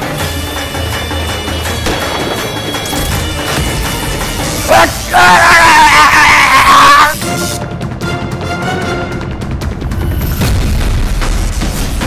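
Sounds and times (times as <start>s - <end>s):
dramatic score with deep booms: 0.5s - 12.0s.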